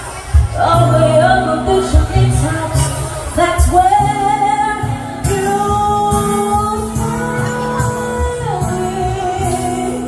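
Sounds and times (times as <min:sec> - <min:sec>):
live band playing pop song: 0:00.0 - 0:10.0.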